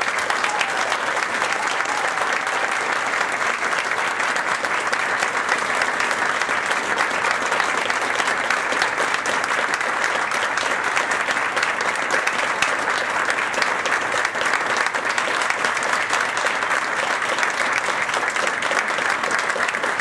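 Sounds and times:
audience applauding: 0.0 - 20.0.

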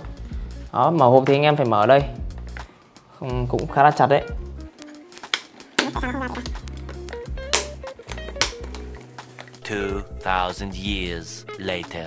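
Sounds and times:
background music with bass line: 0.0 - 12.0.

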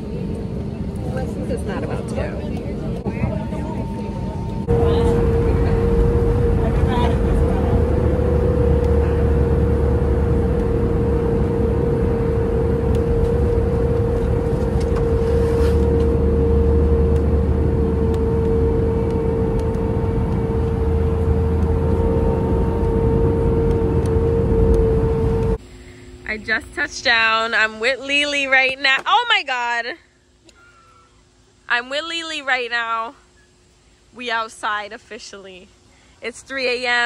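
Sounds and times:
airliner engines droning: 0.0 - 37.0
constant hum: 0.0 - 37.0
rushing air: 3.9 - 26.1.

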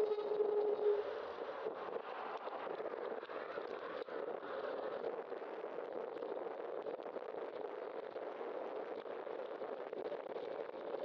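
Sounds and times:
steady mid-pitched whine: 0.0 - 1.9.

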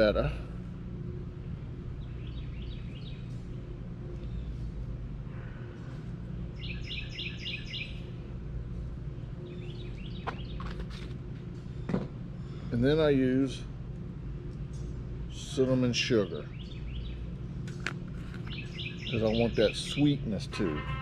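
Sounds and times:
steady low hum: 0.0 - 21.0
small bird chirping: 6.6 - 8.1, 18.4 - 20.1.

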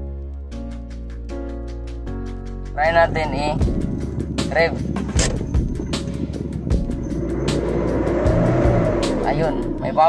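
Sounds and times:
diesel engine revving: 3.6 - 10.0.

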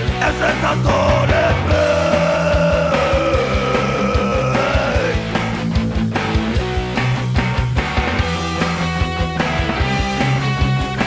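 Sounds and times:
bass: 0.0 - 11.0.

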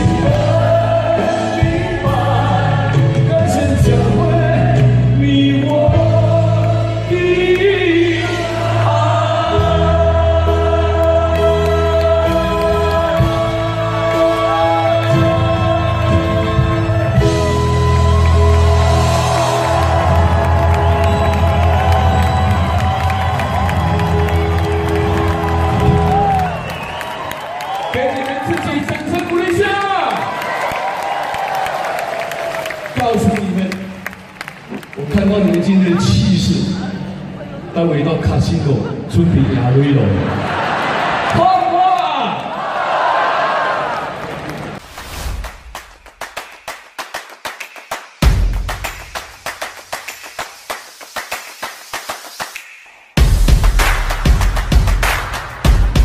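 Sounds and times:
outro music: 6.0 - 27.0, 47.9 - 56.0
crowd cheering: 17.4 - 37.6, 39.3 - 52.2.

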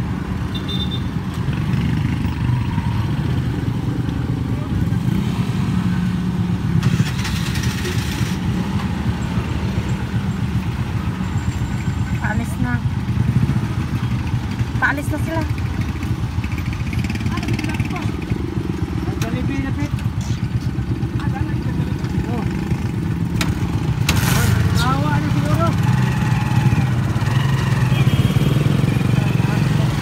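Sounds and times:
small motorcycle engine rumbling: 0.6 - 30.0.

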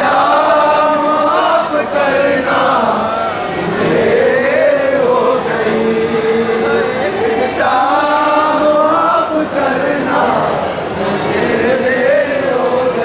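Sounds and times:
crowd of men chanting: 0.0 - 13.0.

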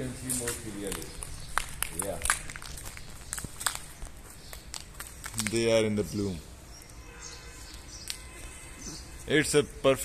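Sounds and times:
footsteps: 0.0 - 5.6
short irregular clicks and crackles: 0.3 - 5.8.

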